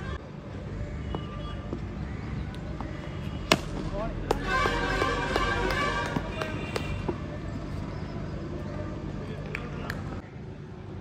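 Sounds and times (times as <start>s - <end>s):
bat striking ball: 3.4s - 6.8s.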